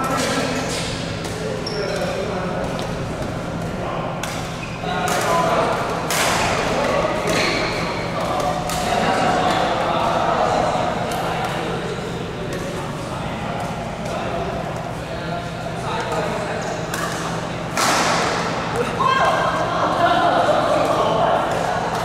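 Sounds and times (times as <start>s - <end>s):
steady low hum: 0.0s - 22.0s
racket hitting shuttlecock: 2.0s - 8.9s.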